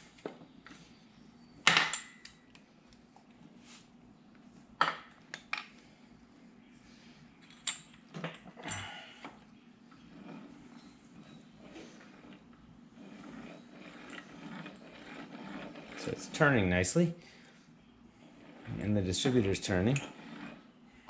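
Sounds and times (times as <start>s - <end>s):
crankshaft whirring metal-on-metal: 10.1s - 17.1s, 18.2s - 20.7s.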